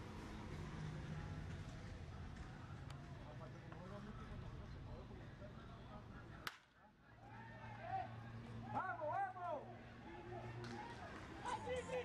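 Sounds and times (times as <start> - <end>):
faint background murmur: 0.0 - 12.0.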